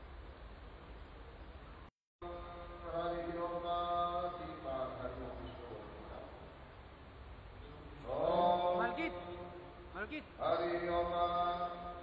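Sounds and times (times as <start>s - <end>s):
mantras chanted in a sung tone: 2.2s - 6.4s, 7.6s - 12.0s.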